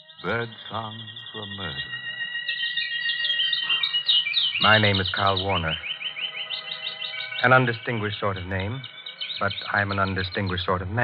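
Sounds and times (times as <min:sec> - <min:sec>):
songbirds chirping and warbling: 0:00.0 - 0:11.0
steady high tone: 0:00.0 - 0:11.0.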